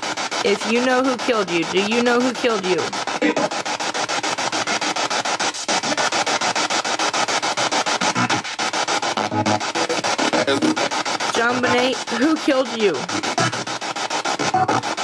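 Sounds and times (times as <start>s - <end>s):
choppy radio static: 0.0s - 15.0s
snatches of broadcast sound: 0.0s - 15.0s.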